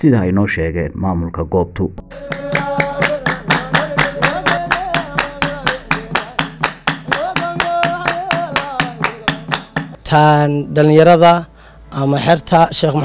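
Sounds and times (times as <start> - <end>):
men chanting in unison: 2.1 - 9.6
rhythmic hand-clapping: 2.1 - 10.0.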